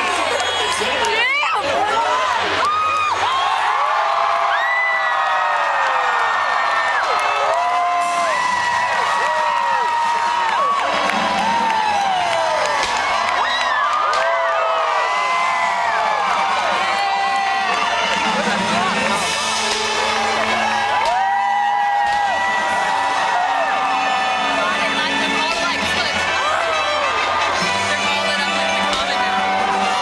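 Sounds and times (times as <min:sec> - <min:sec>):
crowd cheering and screaming: 0:00.0 - 0:30.0.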